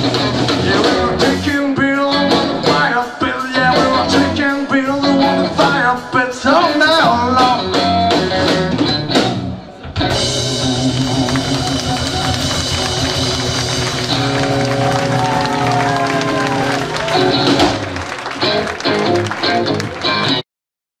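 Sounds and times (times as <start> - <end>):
crowd shouting and cheering: 0.0 - 7.7, 9.4 - 20.4
blues band playing: 0.0 - 20.4
bending guitar notes: 7.0 - 20.4.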